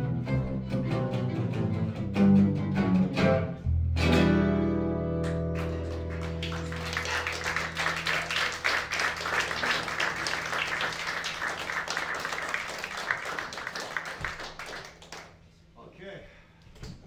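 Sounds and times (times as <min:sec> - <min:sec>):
audience applauding: 0:05.2 - 0:15.4.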